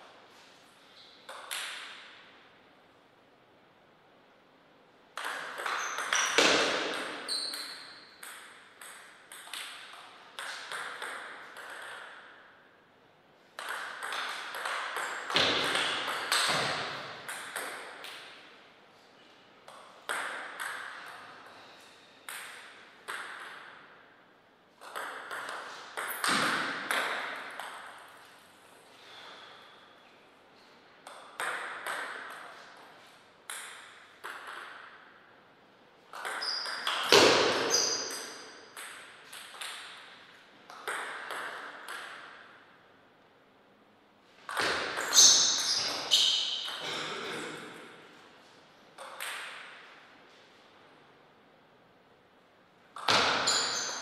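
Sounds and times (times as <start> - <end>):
table tennis ball hits: 1.3 - 2.2, 5.1 - 12.5, 13.6 - 18.4, 19.7 - 21.3, 22.3 - 23.9, 24.8 - 28.1, 31.0 - 32.9, 33.5 - 35.2, 36.1 - 42.6, 44.4 - 47.0, 49.0 - 49.9, 52.9 - 54.0.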